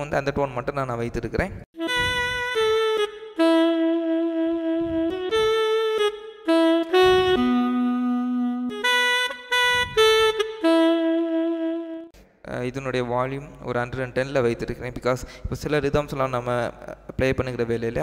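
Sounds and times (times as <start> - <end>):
keyboard saxophone melody: 1.7 - 12.2.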